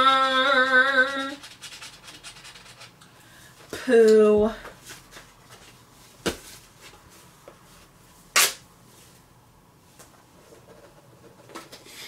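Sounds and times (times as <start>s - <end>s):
lottery ticket scratching rasp: 0.0s - 3.0s.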